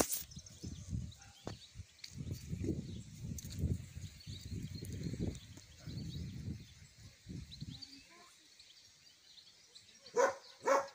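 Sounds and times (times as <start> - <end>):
wind rumbling on microphone: 0.0 - 8.2
faint bird chirps: 0.1 - 10.9.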